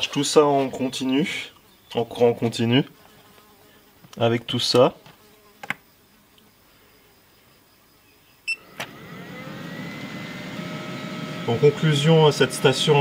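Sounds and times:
cooling fan whirring: 0:08.6 - 0:13.0.

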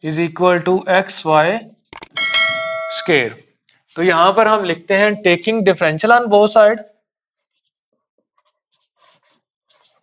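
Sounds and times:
bell-like ding: 0:02.1 - 0:03.4.

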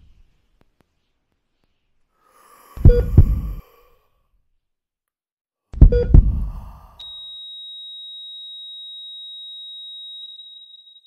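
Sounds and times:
high-pitched sine tone: 0:07.0 - 0:11.0.

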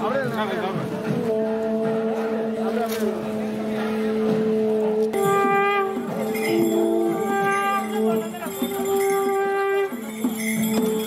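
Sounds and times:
wind instruments holding a drone: 0:00.9 - 0:11.0.

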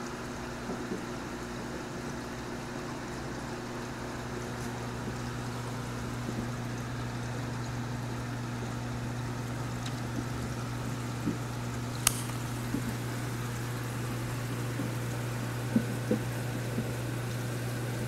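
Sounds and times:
aquarium water trickling and bubbling: 0:00.0 - 0:18.0
steady low hum: 0:00.0 - 0:18.0
sharp click: 0:12.0 - 0:12.4.

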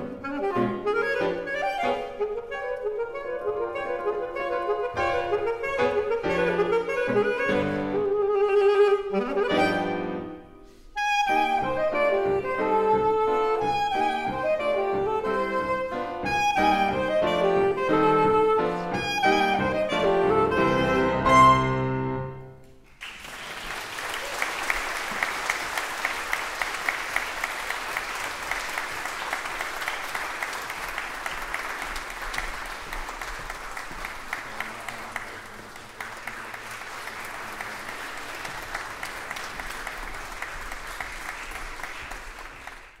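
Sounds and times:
audience applauding: 0:22.8 - 0:43.0.

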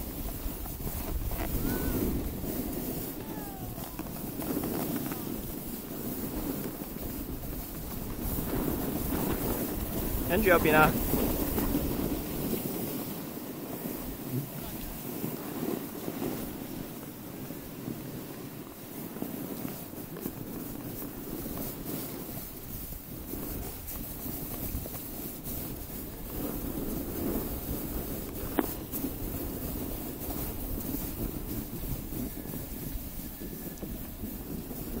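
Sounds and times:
snow scraping underfoot: 0:00.0 - 0:35.0
wind rumbling on microphone: 0:00.0 - 0:35.0.

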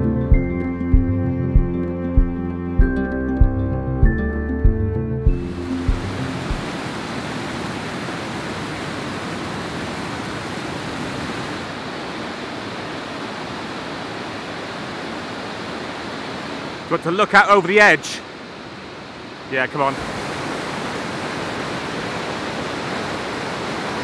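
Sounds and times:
background music: 0:00.0 - 0:06.7
waterfall rushing: 0:05.4 - 0:24.0.

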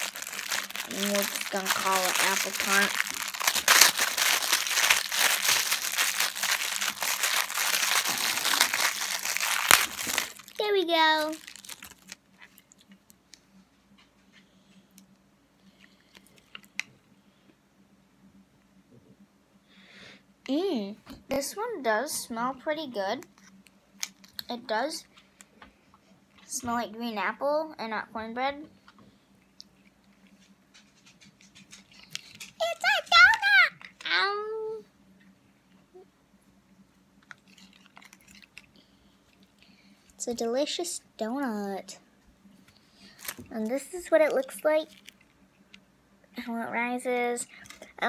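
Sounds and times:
foam toy being squeezed: 0:00.0 - 0:12.2
faint steady hum: 0:00.0 - 0:48.0.

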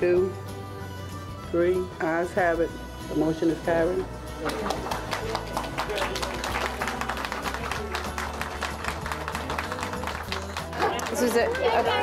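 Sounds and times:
background music with low bass: 0:00.0 - 0:12.0
audience clapping: 0:04.4 - 0:12.0.

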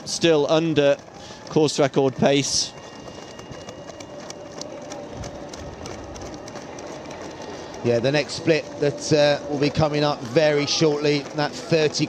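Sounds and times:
running footfalls on road: 0:00.0 - 0:12.0.

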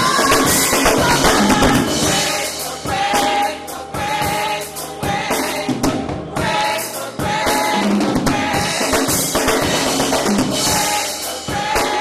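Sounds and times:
band playing steady beat: 0:00.0 - 0:12.0
gospel choir singing: 0:00.0 - 0:12.0.

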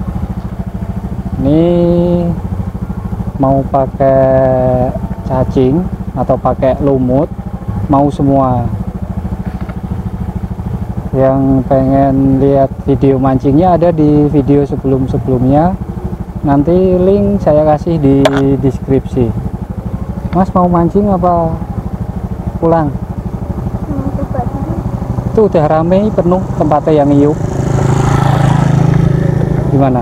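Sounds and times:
small motorcycle engine idling: 0:00.0 - 0:30.0.

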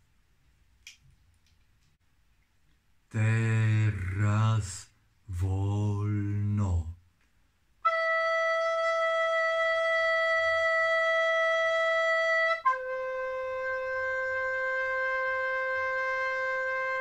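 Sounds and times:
man's voice: 0:03.1 - 0:07.0.

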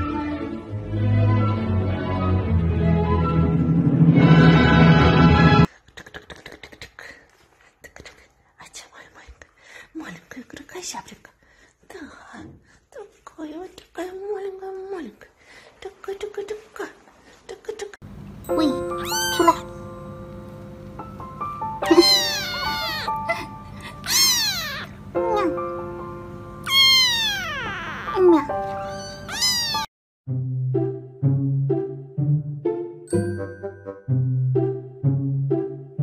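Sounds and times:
background music with held notes: 0:00.0 - 0:05.7, 0:18.4 - 0:24.1, 0:24.9 - 0:27.0, 0:28.2 - 0:36.0
kitten meowing loudly: 0:18.9 - 0:19.7, 0:21.8 - 0:23.3, 0:24.0 - 0:25.4, 0:26.6 - 0:29.9.

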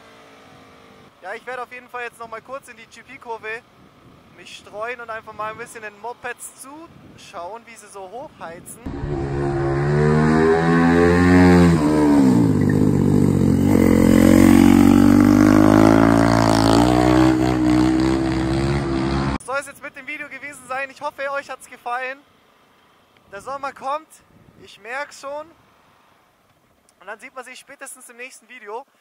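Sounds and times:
motorcycle engine revving: 0:08.9 - 0:19.4.

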